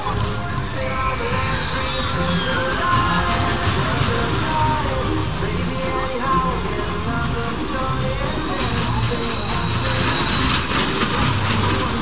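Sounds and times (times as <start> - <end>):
fairground rides rumbling and hissing: 0.0 - 12.0.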